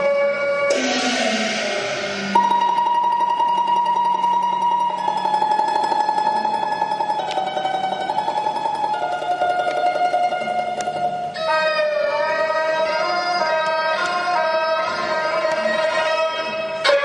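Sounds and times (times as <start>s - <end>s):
plucked string accompaniment: 0.0s - 17.0s
high melodic line: 0.7s - 9.5s.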